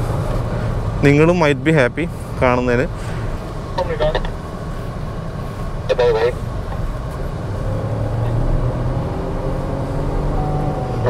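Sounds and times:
road hum: 0.0 - 11.0
car engine accelerating: 2.9 - 11.0.

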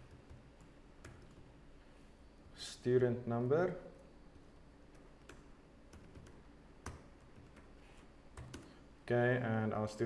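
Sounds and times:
faint room tone: 0.0 - 10.0
soft keyboard keystrokes: 8.4 - 8.7.

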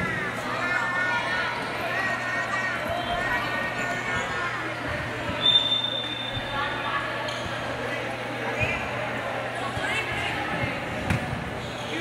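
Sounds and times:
chatter of voices: 0.0 - 12.0.

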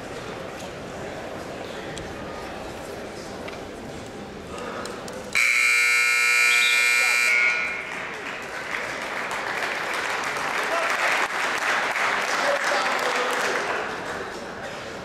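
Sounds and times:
crowd noise and voices: 0.0 - 15.0
scoreboard buzzer: 5.4 - 7.9.

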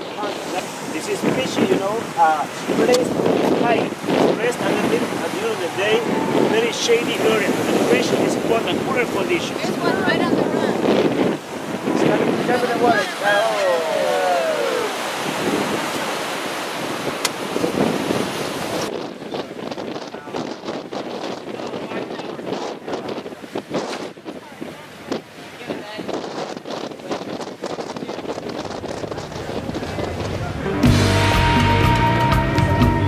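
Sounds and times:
wind buffeting microphone: 0.0 - 31.0
surf breaking on rocks: 0.0 - 31.4.

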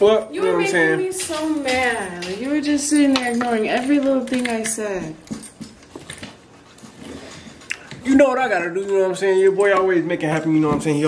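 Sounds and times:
people talking: 0.0 - 5.2.

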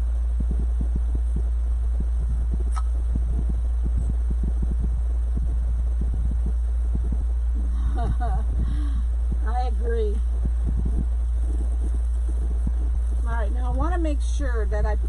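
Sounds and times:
low hum: 0.0 - 15.0
sharp click: 2.7 - 3.0.

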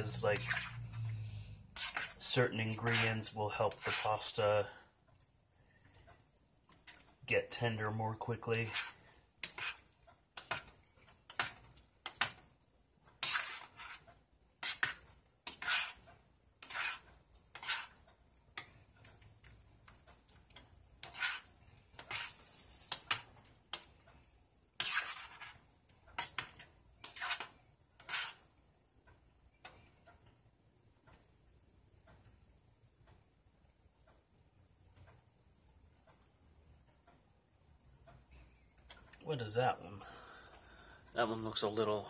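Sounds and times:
utensil scraping metal pot: 0.0 - 4.4, 6.8 - 12.4, 13.1 - 18.0, 20.5 - 23.9, 24.8 - 28.5.

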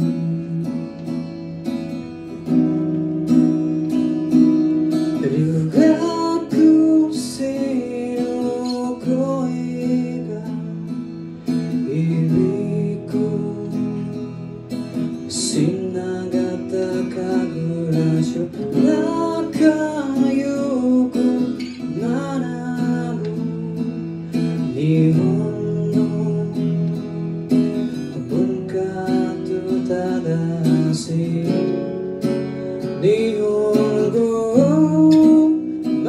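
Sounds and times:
man singing: 0.0 - 1.2, 4.9 - 36.0
acoustic guitar strumming: 0.0 - 36.0.

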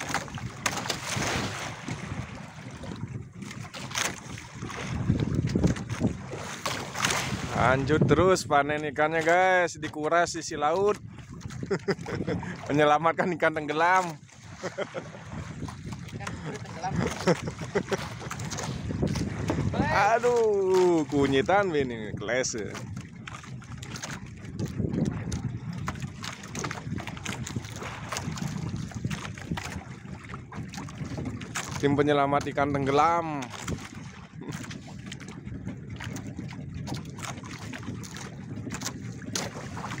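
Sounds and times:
boat engine rumble: 0.0 - 40.0
wind buffeting microphone: 0.0 - 40.0
person laughing: 11.7 - 12.6, 14.6 - 15.1, 16.3 - 18.3.

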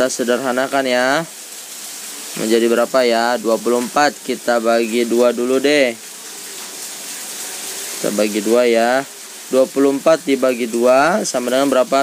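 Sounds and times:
steady rushing hiss: 0.0 - 12.0.

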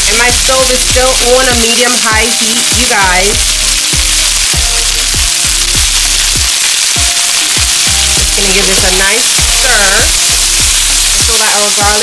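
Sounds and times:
background music with beat: 0.0 - 12.0
chicken sizzling in a frying pan: 0.0 - 12.0.

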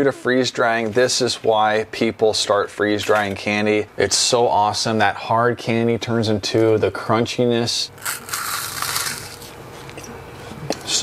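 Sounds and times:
crunching and chewing candy: 8.0 - 9.6.

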